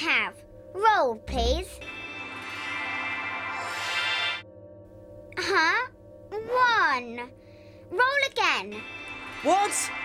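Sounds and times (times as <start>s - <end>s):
bright high shimmer: 1.5s - 4.8s, 8.6s - 10.0s
sustained synth chord: 1.7s - 5.4s.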